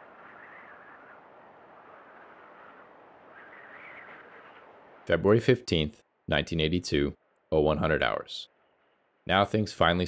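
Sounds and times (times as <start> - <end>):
faint steady rushing noise: 0.0 - 10.0.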